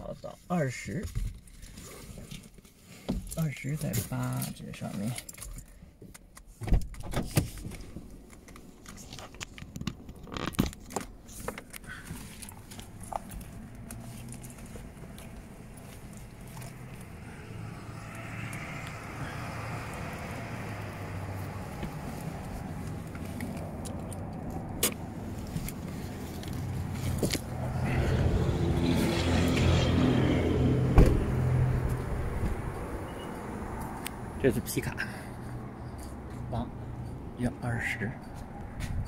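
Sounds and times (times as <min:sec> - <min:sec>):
vehicle rumble: 0:00.0 - 0:39.0
handling noises in a car: 0:00.6 - 0:18.4, 0:19.0 - 0:28.3, 0:30.8 - 0:34.2.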